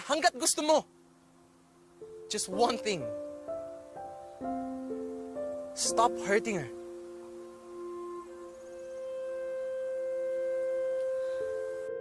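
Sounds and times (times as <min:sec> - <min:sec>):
sustained soft pad note: 0:02.0 - 0:12.0.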